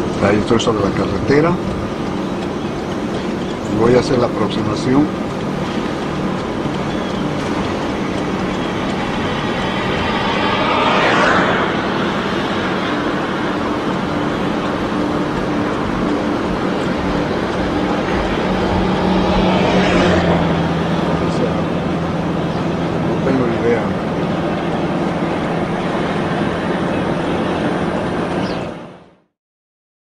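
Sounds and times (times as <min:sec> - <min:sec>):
car engine hum: 0:00.0 - 0:29.2
tyre and wind rush: 0:05.4 - 0:23.1.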